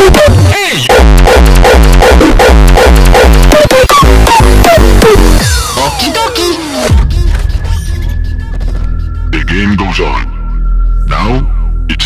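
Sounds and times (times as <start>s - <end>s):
pounding bass kick drum: 0.0s - 5.8s
hardstyle electronic music: 0.0s - 10.6s.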